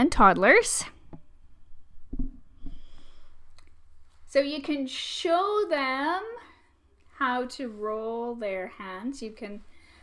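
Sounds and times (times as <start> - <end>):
bump against microphone: 2.1 - 2.8.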